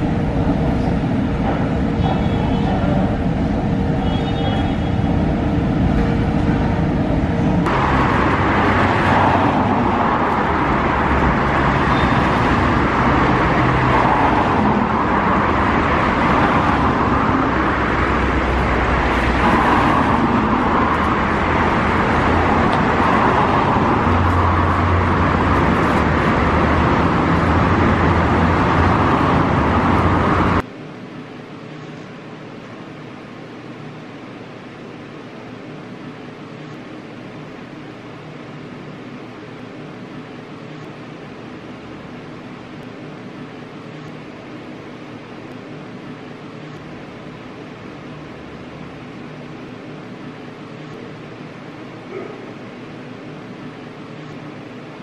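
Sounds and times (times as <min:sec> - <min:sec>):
city road traffic: 0:00.0 - 0:55.0
metro train humming whine: 0:00.0 - 0:55.0
steady room hum: 0:00.0 - 0:55.0.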